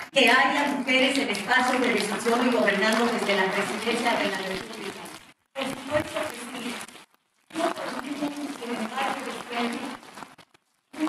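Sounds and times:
woman speaking: 0.0 - 10.2.

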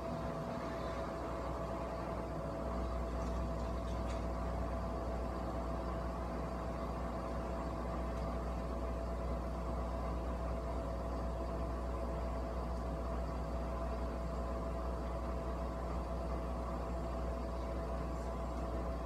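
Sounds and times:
machine hum: 0.0 - 19.0.

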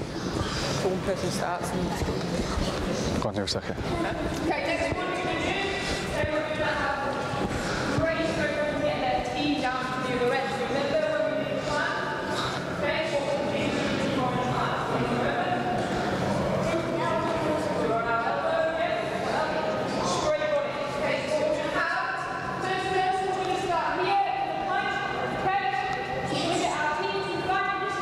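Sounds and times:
person talking in echoing hall: 0.0 - 28.0.

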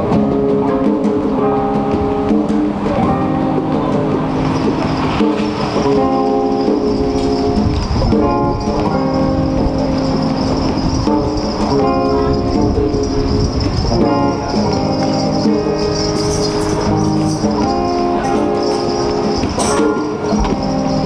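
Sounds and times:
electric guitar chords: 0.0 - 21.0
hand drums and drum kit: 0.0 - 21.0.

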